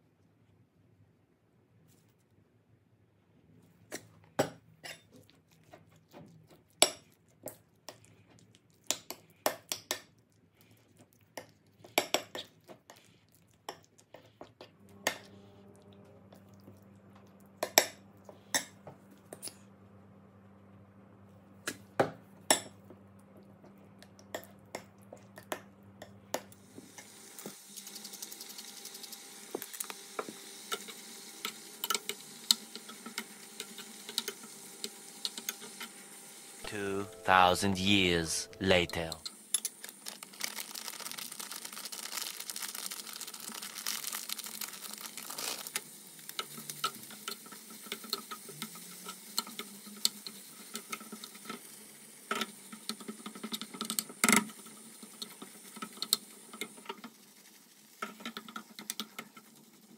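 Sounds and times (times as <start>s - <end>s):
chicken sizzling in a pan: 26.6s - 38.4s, 39.4s - 59.9s.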